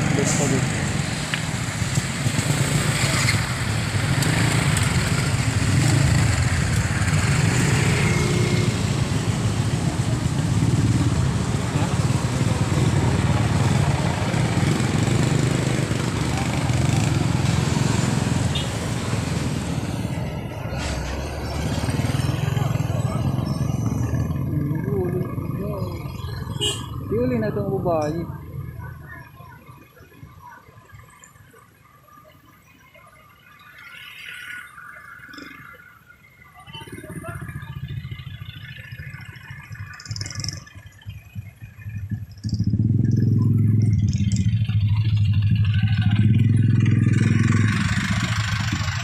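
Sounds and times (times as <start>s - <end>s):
motorcycle engine rumbling: 0.0s - 32.9s, 34.7s - 49.0s
road noise: 0.0s - 49.0s.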